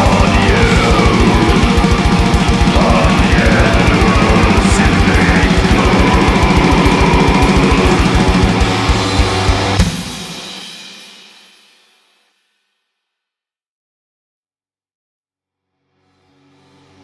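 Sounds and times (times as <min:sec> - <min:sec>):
black metal band playing: 0:00.0 - 0:11.5
rapid kick drum strokes: 0:00.0 - 0:11.8.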